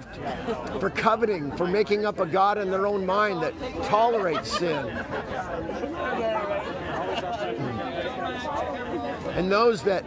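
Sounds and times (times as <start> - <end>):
distant overlapping conversation: 0.0 - 10.0.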